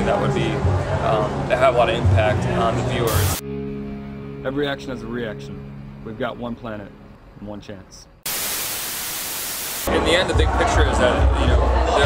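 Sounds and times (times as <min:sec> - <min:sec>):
static hiss: 0:03.1 - 0:03.4, 0:08.2 - 0:09.9.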